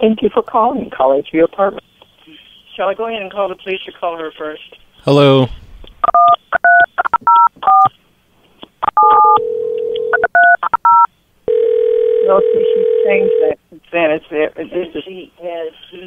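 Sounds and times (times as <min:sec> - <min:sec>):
touch-tone keypad beeps: 0:06.0 - 0:07.9, 0:08.9 - 0:09.4, 0:10.1 - 0:11.1
telephone ring tone: 0:08.9 - 0:13.6
voice on phone line: 0:12.2 - 0:13.6.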